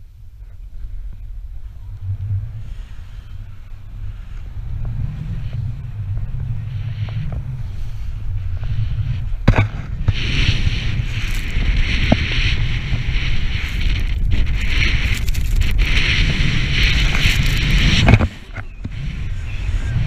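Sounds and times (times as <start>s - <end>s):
wind buffeting microphone: 0.0s - 20.0s
snowboard hissing through snow: 5.0s - 20.0s.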